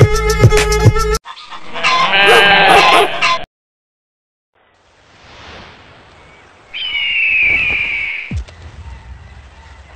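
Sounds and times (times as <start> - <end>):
background music with a beat: 0.0 - 1.2
long wavering livestock bleat: 1.5 - 3.4.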